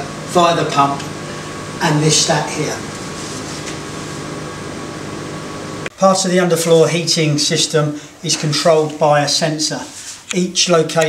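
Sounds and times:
plant room equipment humming: 0:00.0 - 0:11.0.

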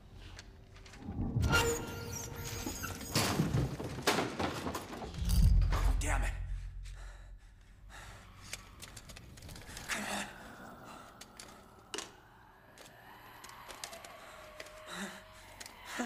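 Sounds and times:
deep boom: 0:05.2 - 0:08.1.

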